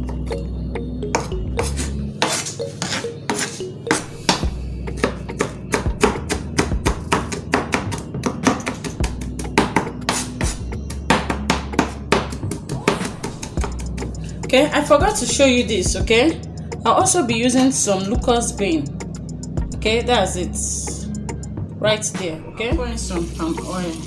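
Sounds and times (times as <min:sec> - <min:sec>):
knife chopping on plastic board: 0:01.2 - 0:13.8.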